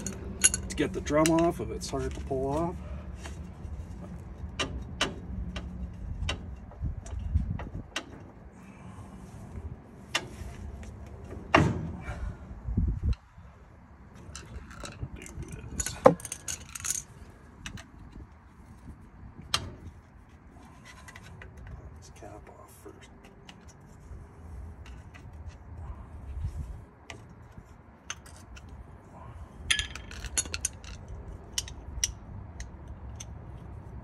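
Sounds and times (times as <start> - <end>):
metal hand tools clinking: 0.0 - 1.5.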